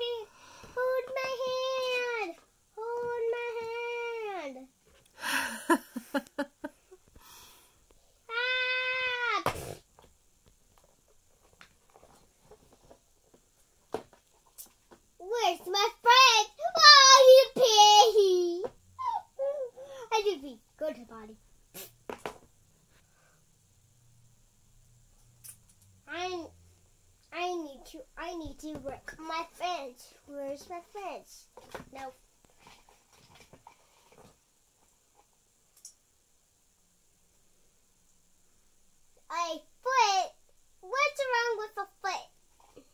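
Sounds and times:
child's high animal-like cry: 8.3s - 9.4s, 19.0s - 20.0s.

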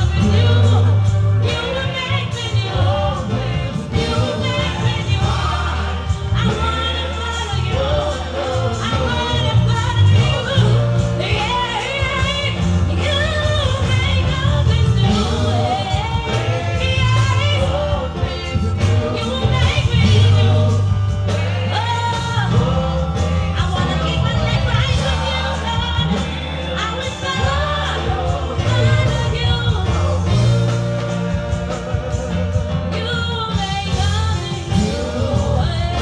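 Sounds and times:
woman singing into microphone: 0.0s - 31.2s, 31.8s - 36.0s
choir singing: 0.0s - 36.0s
instrumental accompaniment heavy bass: 0.0s - 36.0s.

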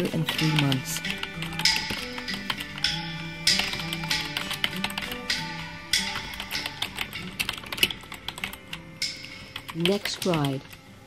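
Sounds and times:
plucked guitar music: 0.0s - 10.8s.

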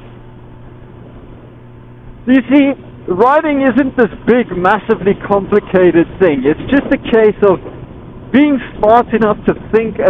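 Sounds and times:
motorcycle engine cruising: 0.0s - 10.0s
road noise: 0.0s - 10.0s.

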